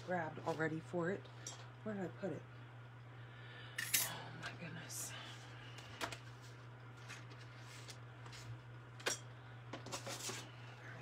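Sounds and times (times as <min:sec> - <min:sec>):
low steady hum: 0:00.0 - 0:11.0
paper rustling: 0:06.4 - 0:08.6.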